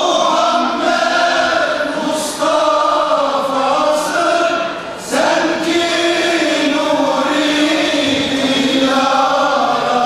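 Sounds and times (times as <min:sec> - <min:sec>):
male choir singing a hymn: 0:00.0 - 0:10.0.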